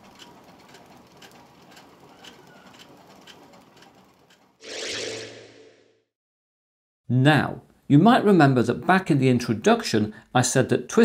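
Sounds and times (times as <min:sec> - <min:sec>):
faint mechanical clicking: 0:00.0 - 0:04.6.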